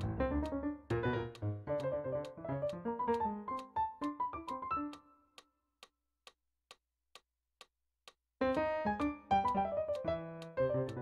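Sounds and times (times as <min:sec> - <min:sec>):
atonal piano chords: 0:00.0 - 0:05.2, 0:08.4 - 0:11.0
metronome clicking: 0:00.0 - 0:06.0, 0:08.4 - 0:11.0.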